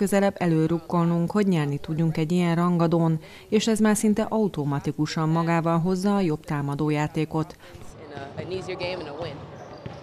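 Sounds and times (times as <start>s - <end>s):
basketball bouncing on wooden court: 8.1s - 10.0s.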